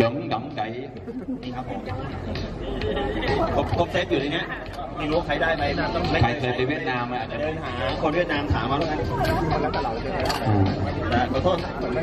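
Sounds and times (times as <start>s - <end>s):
people chattering: 0.9s - 12.0s.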